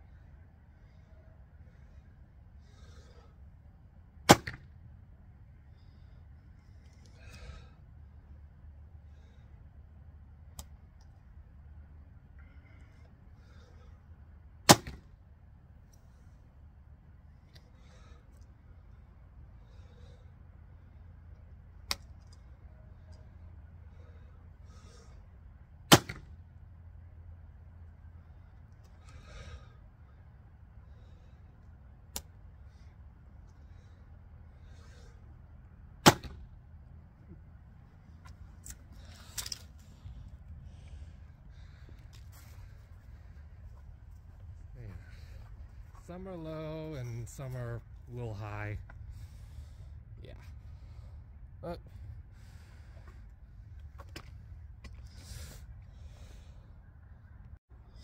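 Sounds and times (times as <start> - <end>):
rustling of arrow handling: 37.2 - 41.0.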